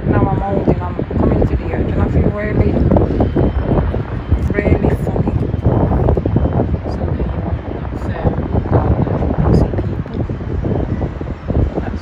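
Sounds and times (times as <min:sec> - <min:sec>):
wind buffeting microphone: 0:00.0 - 0:12.0
indistinct voices: 0:04.2 - 0:10.6.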